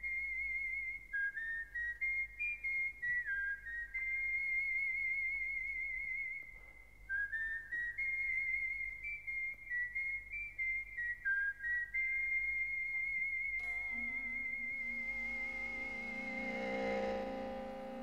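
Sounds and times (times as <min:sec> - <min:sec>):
faint low hum: 0:00.0 - 0:18.0
whistled melody: 0:00.0 - 0:18.0.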